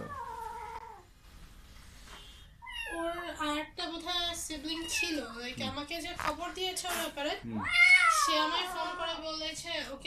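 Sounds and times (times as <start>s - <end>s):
kitten meowing: 7.6s - 9.1s.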